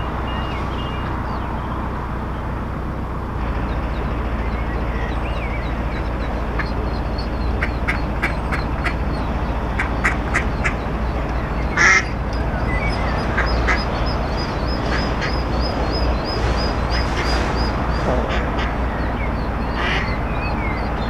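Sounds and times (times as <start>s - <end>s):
boat engine rumble: 0.0s - 21.0s
ducks quacking: 3.4s - 21.0s.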